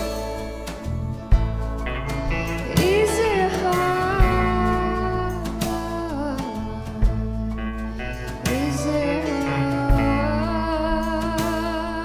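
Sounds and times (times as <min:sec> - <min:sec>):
country-rock band playing: 0:00.0 - 0:12.0.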